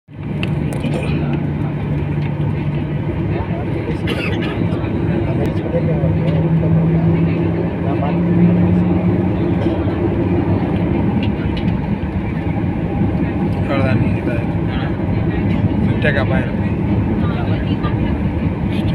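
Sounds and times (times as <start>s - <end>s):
jet engines and cabin hum: 0.1s - 18.9s
people talking: 2.8s - 18.9s.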